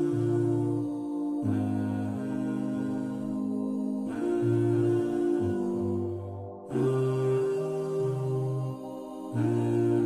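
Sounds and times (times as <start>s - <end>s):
wordless humming vocals: 0.0s - 10.0s.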